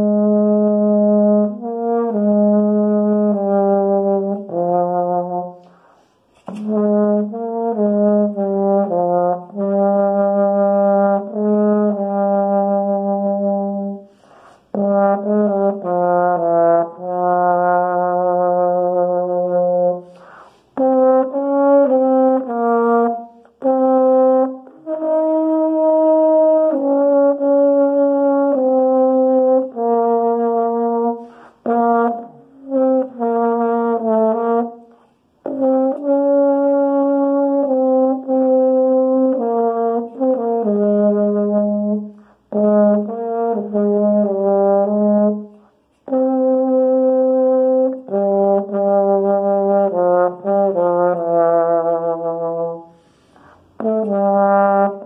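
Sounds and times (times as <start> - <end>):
baritone horn melody: 0.0 - 55.0.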